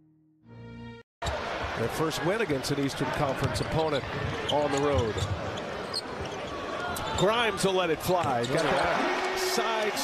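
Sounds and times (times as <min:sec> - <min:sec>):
arena crowd noise: 0:01.2 - 0:10.0.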